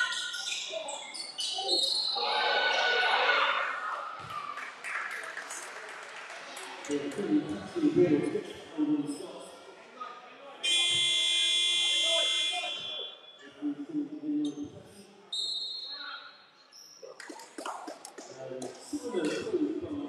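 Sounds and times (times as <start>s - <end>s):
scoreboard buzzer blast: 10.7s - 12.9s.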